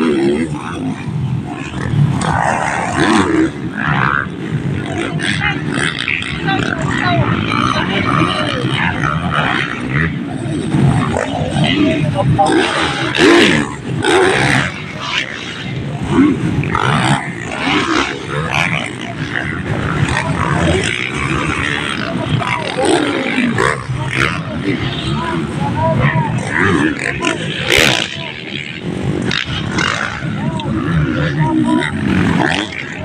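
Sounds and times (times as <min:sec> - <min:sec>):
crowd voices chattering: 0:00.0 - 0:33.0
dirt bike engines revving: 0:00.0 - 0:33.0.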